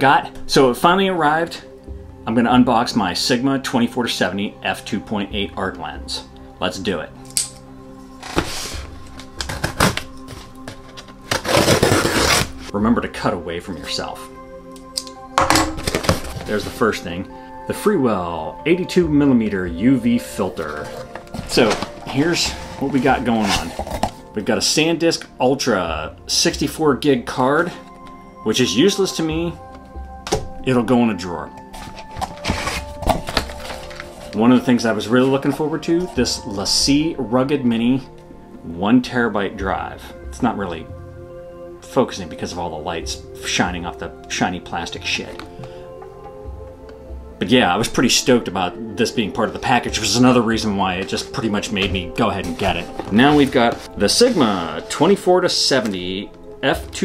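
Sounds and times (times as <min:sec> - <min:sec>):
light background music: 0:00.0 - 0:57.0
cardboard rustling: 0:08.2 - 0:12.7, 0:15.8 - 0:16.9, 0:20.3 - 0:24.4, 0:31.7 - 0:36.2, 0:51.1 - 0:56.0
knife slitting packing tape: 0:09.3 - 0:10.2, 0:10.9 - 0:12.7.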